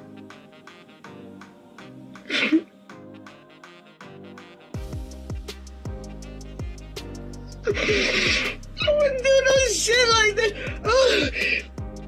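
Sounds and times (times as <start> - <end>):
background music: 0.0 - 12.0
woman sobbing: 7.7 - 11.7.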